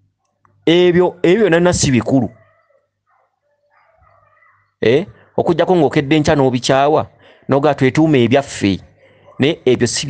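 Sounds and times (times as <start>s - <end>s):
man speaking: 0.6s - 2.5s, 4.8s - 10.0s.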